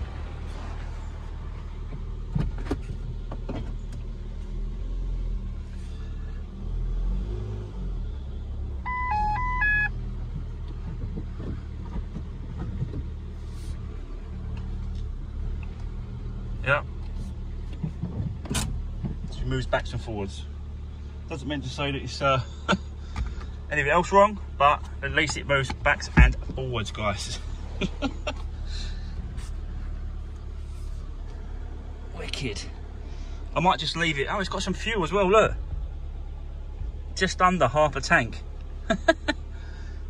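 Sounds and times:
car engine running at low revs: 0.0s - 40.0s
electronic beeps: 8.9s - 9.9s.

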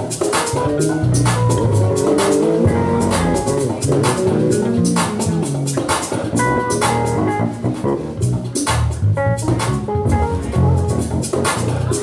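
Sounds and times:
electric bass lines: 0.0s - 12.0s
keyboard chords: 0.0s - 12.0s.

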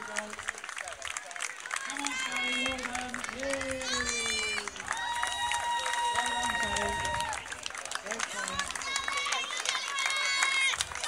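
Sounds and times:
crowd clapping and cheering: 0.0s - 11.0s
voices calling out: 0.0s - 11.0s.

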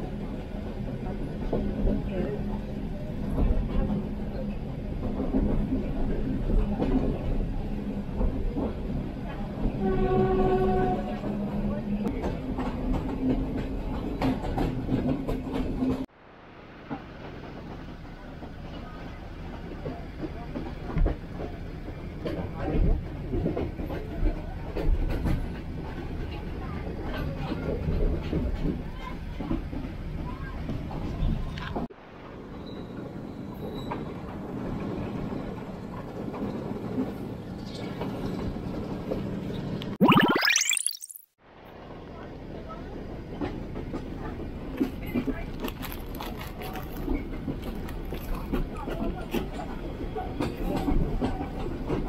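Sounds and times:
train carriage rumbling and rattling: 0.0s - 16.1s, 16.7s - 39.8s, 41.8s - 52.0s.

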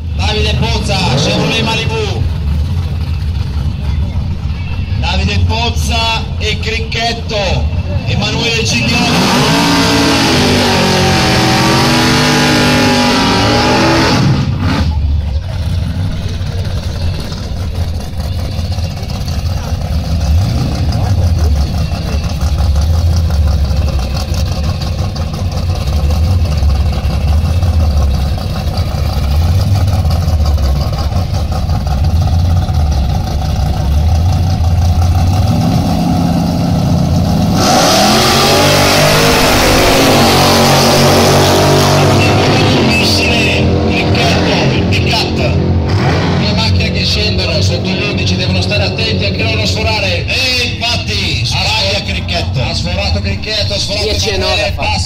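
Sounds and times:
engines rumbling and revving: 0.0s - 55.0s.

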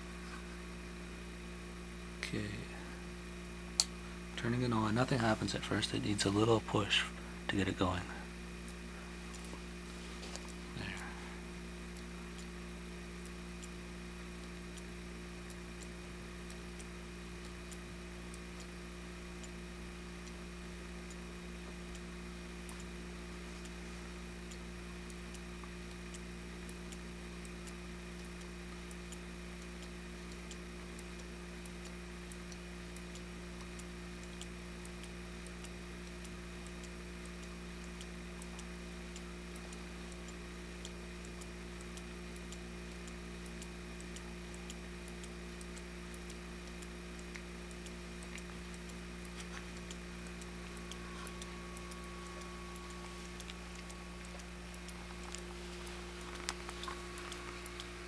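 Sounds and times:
rapid uneven ticking: 3.8s - 58.0s
electric motor humming: 47.2s - 58.0s.

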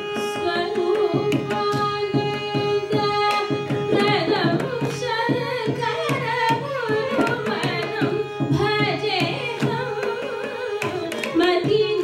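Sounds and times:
violin accompaniment: 0.0s - 12.0s
woman singing: 0.0s - 12.0s.

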